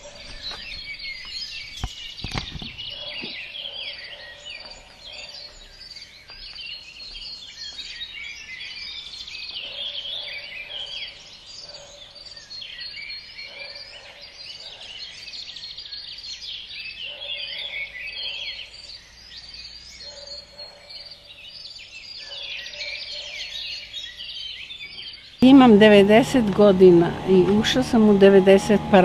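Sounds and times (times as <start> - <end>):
low steady bird call: 0.0 - 29.0
songbirds chirping and trilling: 0.0 - 29.0.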